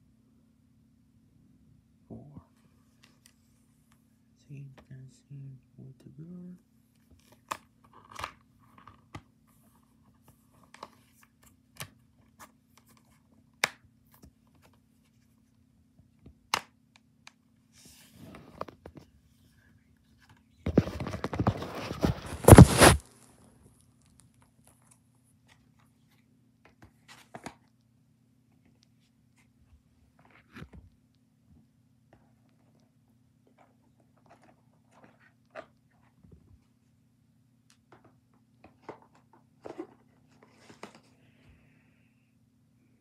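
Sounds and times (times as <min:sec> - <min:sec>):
microphone handling rustle: 0:20.7 - 0:23.1.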